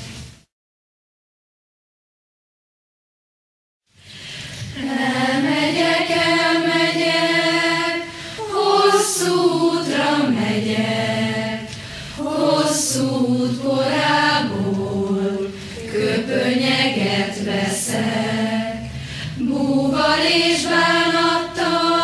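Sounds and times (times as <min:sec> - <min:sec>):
young voices singing in unison: 0:04.7 - 0:22.0.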